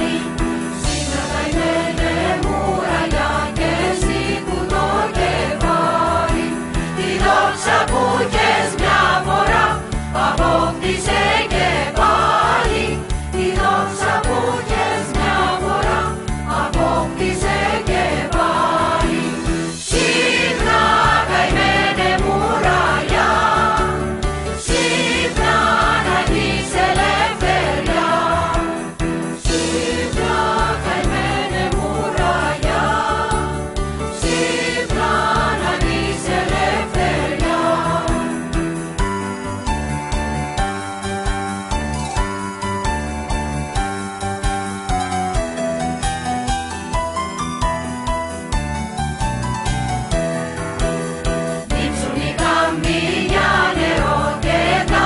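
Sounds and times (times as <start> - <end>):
voices singing with instruments: 0.0 - 38.8, 51.6 - 55.0.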